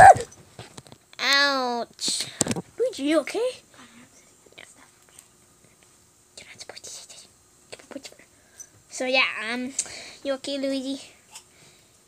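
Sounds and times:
child whispering: 6.4s - 8.3s.

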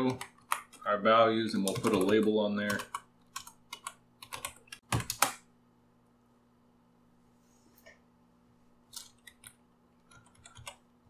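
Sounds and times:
computer keyboard typing: 0.0s - 0.9s, 1.6s - 5.4s, 8.9s - 10.8s.

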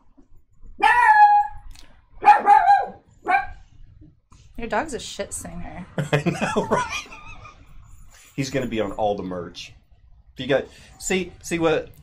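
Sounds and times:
dog howling: 0.8s - 1.6s.

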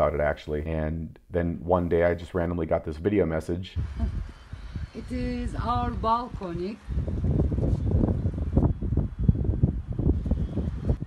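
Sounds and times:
wind buffeting microphone: 3.6s - 11.0s.

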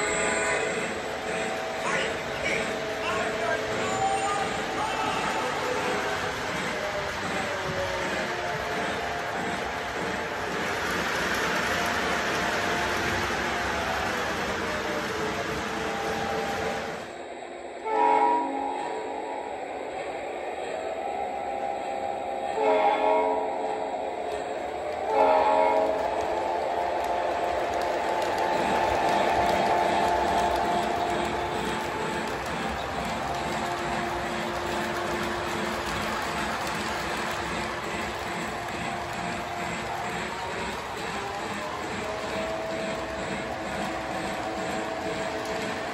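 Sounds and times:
electronic train horn blasts: 0.0s - 4.6s, 17.8s - 19.5s, 22.4s - 36.0s
model trains rolling on track: 0.0s - 45.9s.

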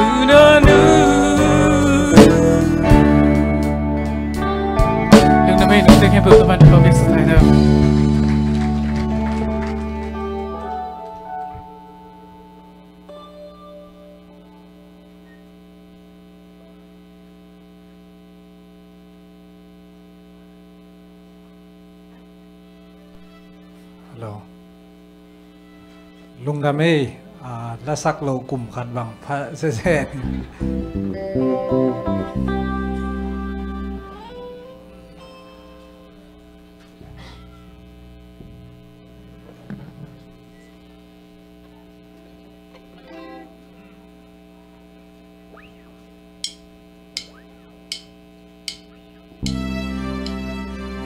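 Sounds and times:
guitar note: 0.0s - 17.0s, 22.0s - 51.0s
electrical mains hum: 0.0s - 51.0s
man speaking over microphone: 5.4s - 7.6s, 26.4s - 30.3s
sharp count-in taps: 46.4s - 50.5s.

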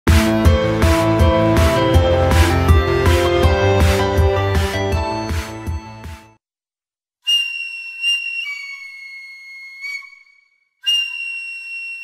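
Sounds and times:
electronic music: 0.1s - 6.4s
flute playing held notes: 7.3s - 12.0s.

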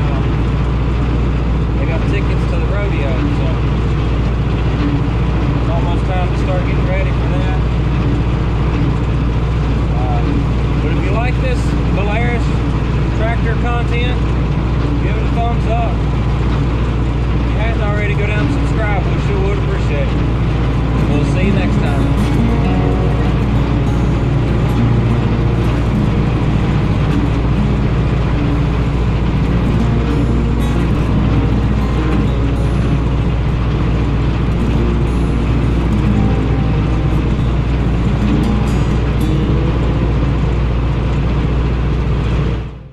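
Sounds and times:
tractor diesel engine running: 0.0s - 42.9s
music playing: 17.6s - 42.9s.

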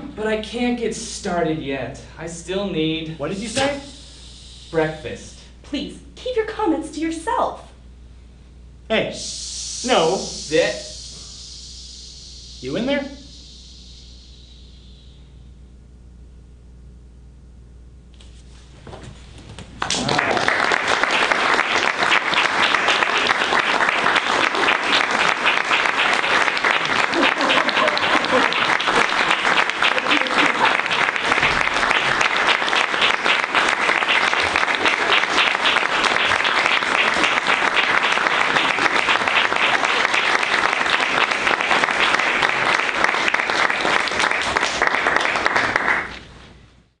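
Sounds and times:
audience applause: 19.8s - 46.2s.

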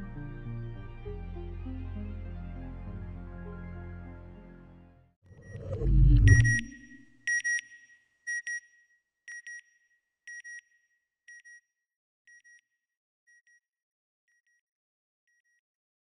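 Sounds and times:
high-pitched double beeps: 5.4s - 7.0s
low whooshing boom: 5.4s - 7.0s.

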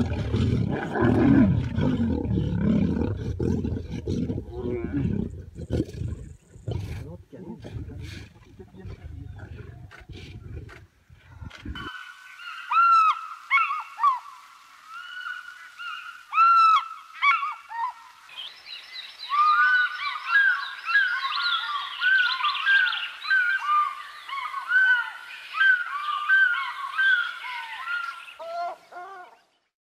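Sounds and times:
birds chirping: 4.1s - 14.2s, 15.0s - 29.7s.

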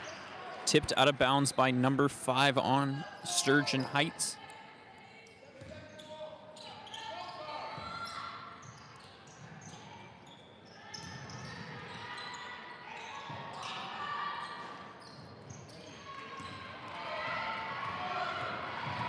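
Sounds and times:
echoing voices: 0.6s - 4.4s.

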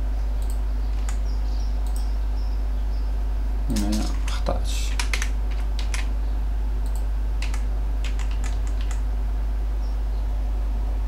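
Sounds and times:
steady low hum: 0.0s - 11.0s
keyboard keystroke clicks: 0.4s - 1.2s, 3.7s - 6.1s, 6.8s - 9.0s.

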